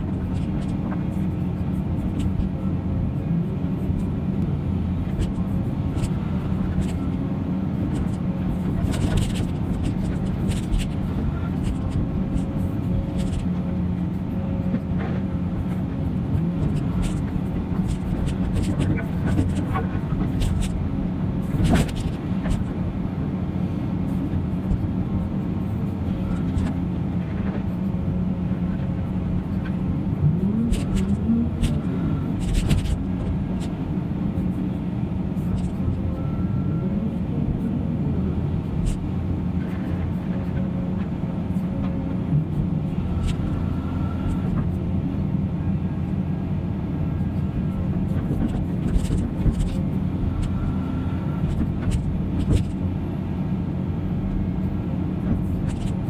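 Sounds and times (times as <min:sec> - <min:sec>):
excavator diesel engine under load: 0:00.0 - 0:56.0.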